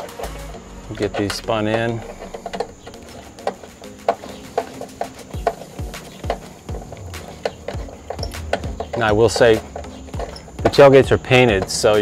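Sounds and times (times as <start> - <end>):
background music with a beat: 0.0 - 12.0.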